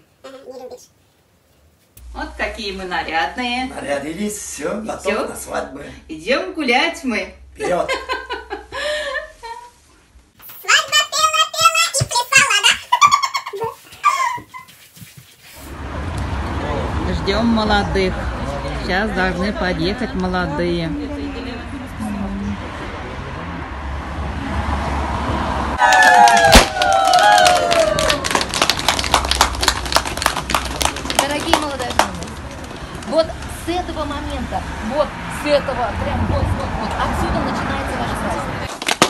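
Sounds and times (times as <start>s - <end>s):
low outdoor rumble: 2.0s - 9.9s, 15.6s - 38.7s
voices: 16.2s - 25.0s, 30.4s - 38.7s
people clapping: 25.8s - 33.2s, 38.7s - 39.0s.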